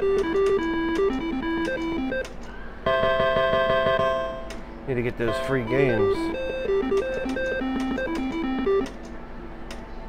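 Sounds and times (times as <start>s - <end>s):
slot machine beeping tune: 0.0s - 4.4s, 5.2s - 9.0s
slot machine reels clicking: 0.0s - 4.6s, 5.4s - 9.0s
background hum: 0.0s - 10.0s.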